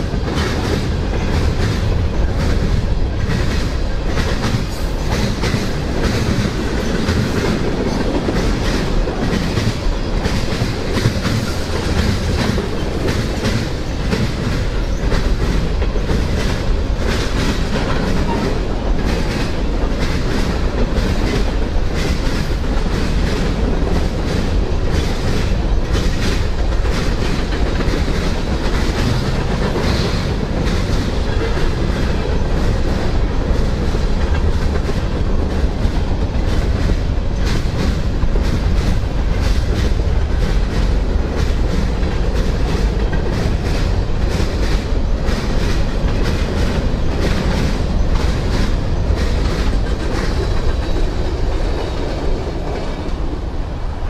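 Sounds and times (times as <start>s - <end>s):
freight train wheels rumbling: 0.0s - 54.0s
rapid clicking of train cars: 0.0s - 54.0s.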